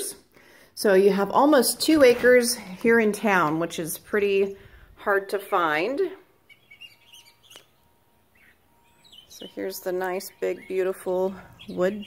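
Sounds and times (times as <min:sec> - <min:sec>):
small birds chirping: 0:00.8 - 0:12.0.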